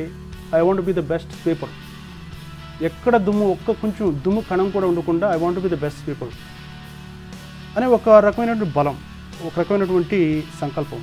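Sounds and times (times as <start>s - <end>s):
man speaking: 0.0s - 1.8s, 2.8s - 6.4s, 7.7s - 11.0s
background music: 0.0s - 11.0s.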